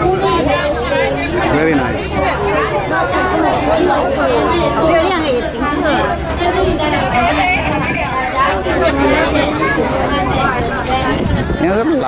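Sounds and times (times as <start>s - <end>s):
passengers chattering: 0.0s - 12.0s.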